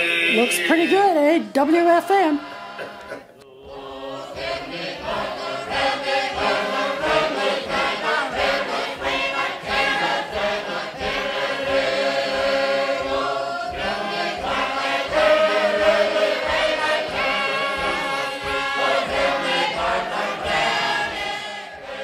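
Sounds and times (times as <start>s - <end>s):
choir singing long notes: 2.3s - 22.0s.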